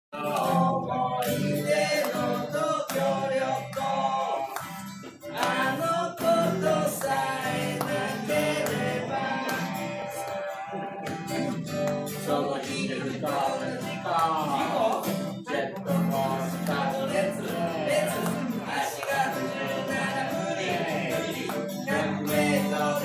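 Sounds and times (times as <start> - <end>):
man singing: 0.1 - 4.6, 5.2 - 23.0
acoustic guitar strumming: 0.2 - 23.0.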